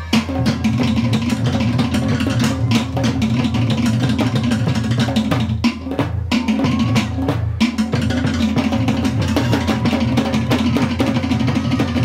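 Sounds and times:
fast dense drumming: 0.0 - 12.0.

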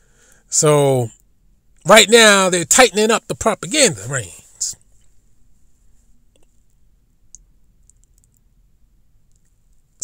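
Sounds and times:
low steady hum: 0.0 - 10.0
faint clicks: 6.3 - 8.5, 9.2 - 9.8.

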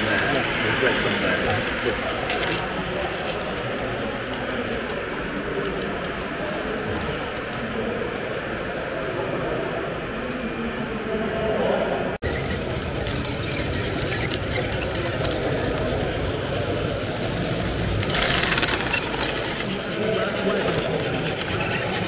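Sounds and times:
model trains running: 0.0 - 10.8, 12.2 - 22.0
echoing hall background noise: 0.0 - 22.0.

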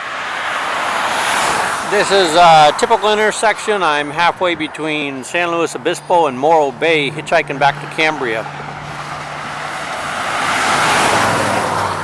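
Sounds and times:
car passing by: 0.0 - 3.8, 7.1 - 12.0.

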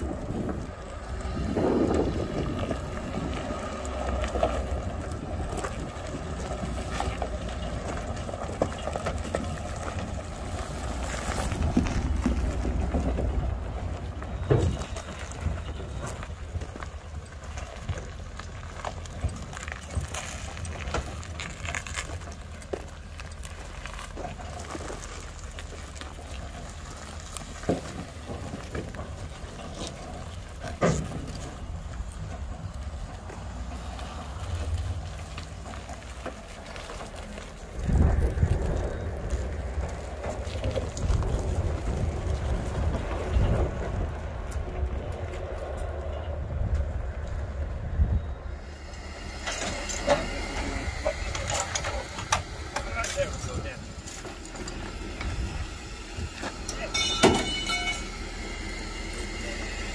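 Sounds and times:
low rumble: 0.0 - 59.9
towed truck rolling and rattling: 0.0 - 59.9
metal knocks and clanks: 56.4 - 58.2.

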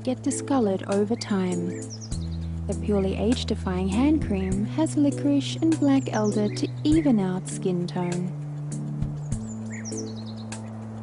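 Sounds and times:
music with sustained chords: 0.0 - 11.0
bird chirping: 0.3 - 11.0.

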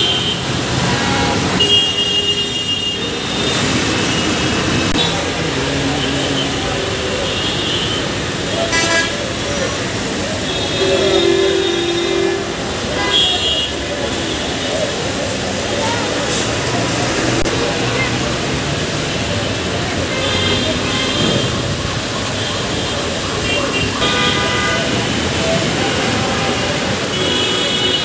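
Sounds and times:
vehicle horns honking: 0.0 - 5.2, 7.2 - 9.4, 10.4 - 14.6, 22.3 - 28.0
traffic roar: 0.0 - 28.0.

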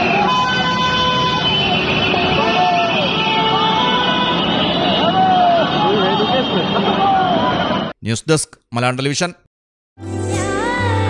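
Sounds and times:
vehicle horns: 0.0 - 7.9
road traffic noise: 0.0 - 8.0
people shouting: 2.1 - 7.8.

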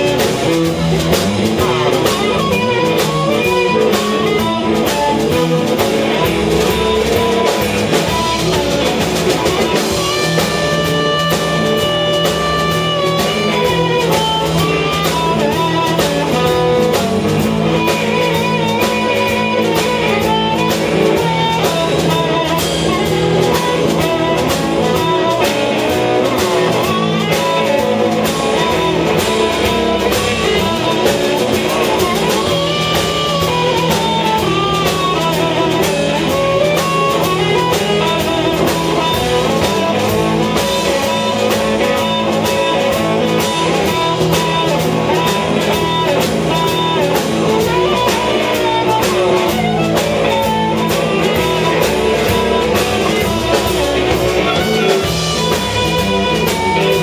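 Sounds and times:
amplified harmonica: 0.0 - 57.0
drum beat: 0.0 - 57.0
electric guitar: 0.0 - 57.0.

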